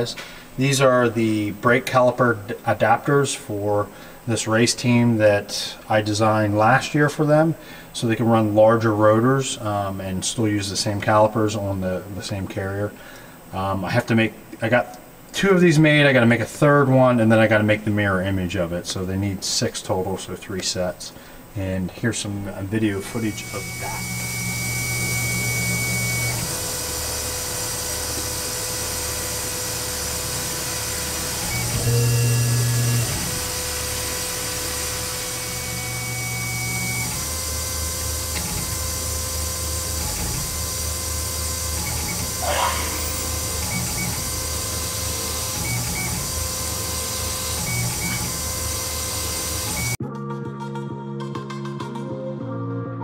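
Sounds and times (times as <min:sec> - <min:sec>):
milling machine spindle running: 0:23.0 - 0:50.0
short sweeping squeal: 0:42.4 - 0:43.8.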